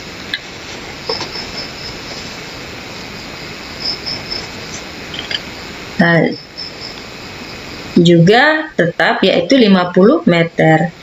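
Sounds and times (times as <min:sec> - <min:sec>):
steady background hiss: 0:00.0 - 0:11.0
faint high-pitched chirping: 0:00.9 - 0:02.6.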